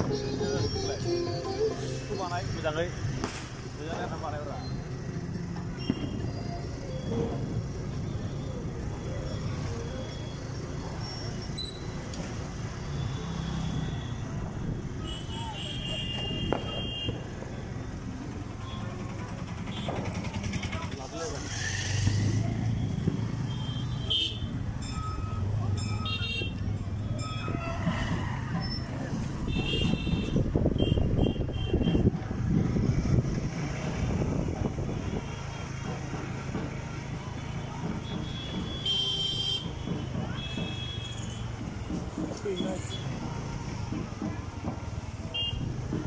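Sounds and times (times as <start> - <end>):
road noise: 0.0 - 46.0
vehicle horn toots: 38.3 - 39.7.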